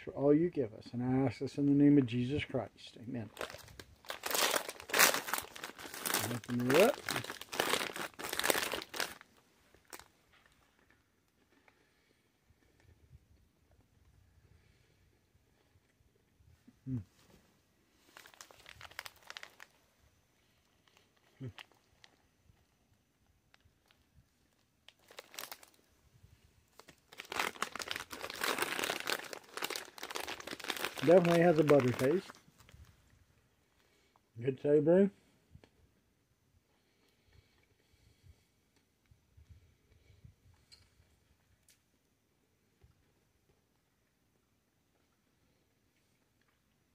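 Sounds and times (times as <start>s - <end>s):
plastic bag crinkling and tearing: 3.2s - 10.1s, 18.0s - 19.8s, 20.7s - 22.2s, 23.5s - 25.8s, 26.7s - 32.8s
pretzels being chewed: 3.4s - 12.0s, 18.0s - 19.7s, 20.4s - 25.8s, 26.8s - 32.4s.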